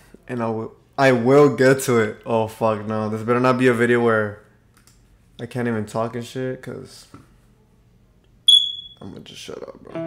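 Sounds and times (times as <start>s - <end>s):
high-pitched electronic beep: 8.5s - 9.0s.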